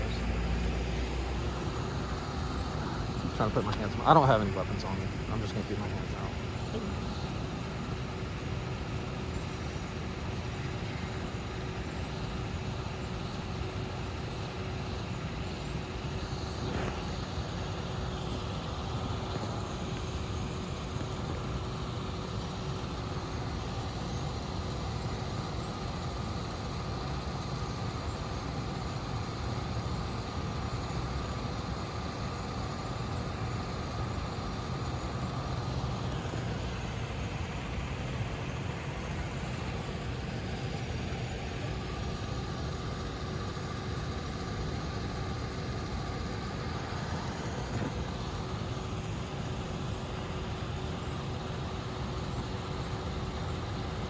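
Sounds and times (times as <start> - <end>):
faint steady whine: 0.0 - 54.0
suv engine idling: 0.0 - 54.0.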